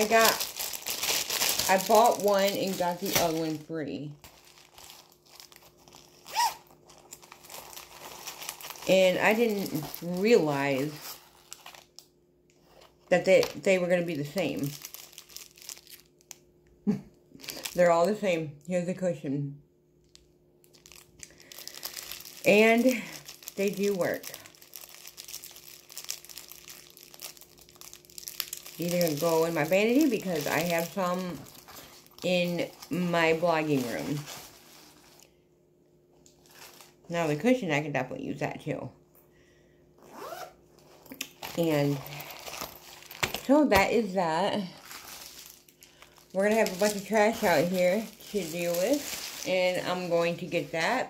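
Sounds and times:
plastic packaging crinkling: 0.0s - 16.5s, 17.4s - 18.2s, 20.0s - 35.4s, 36.2s - 37.4s, 40.2s - 51.0s.

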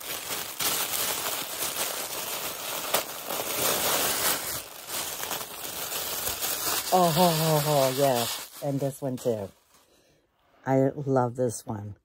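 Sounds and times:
tissue paper rustling and crinkling: 0.0s - 10.0s.

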